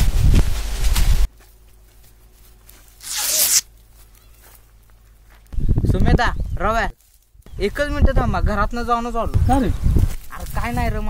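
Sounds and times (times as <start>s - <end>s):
dry grass crushed underfoot: 0.5s - 5.5s, 7.0s - 7.5s, 9.9s - 10.9s.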